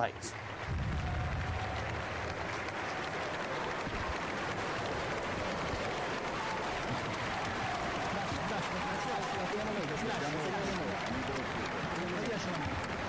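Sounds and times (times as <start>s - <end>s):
large audience applauding: 0.0s - 13.0s
voices in crowd: 1.5s - 13.0s.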